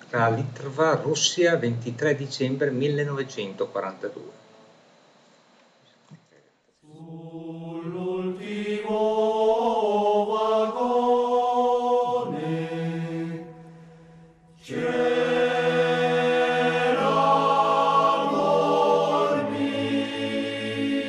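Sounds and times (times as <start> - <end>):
choir singing sustained chords: 6.8 - 21.0.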